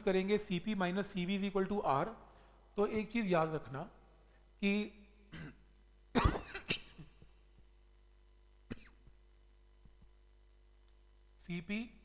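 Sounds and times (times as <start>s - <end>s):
man coughing: 5.3s - 7.3s, 8.7s - 9.0s.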